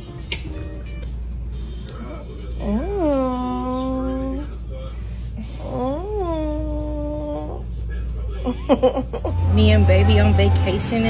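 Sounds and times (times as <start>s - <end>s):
person whining: 5.4s - 7.7s.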